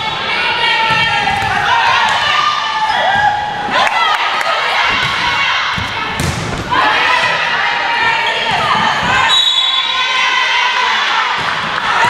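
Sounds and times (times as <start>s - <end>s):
people calling and shouting: 0.0s - 12.0s
volleyball struck by hands: 4.9s - 6.8s.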